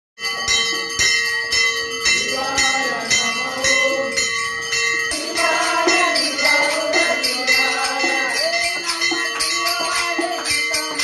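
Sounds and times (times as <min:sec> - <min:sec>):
hand cymbals striking: 0:00.2 - 0:11.0
voices singing devotional song: 0:00.2 - 0:11.0.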